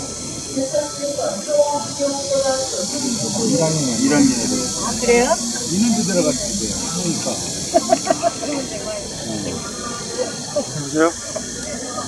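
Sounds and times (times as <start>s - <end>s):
people talking: 0.0s - 12.0s
steady high-pitched hiss: 0.0s - 12.0s.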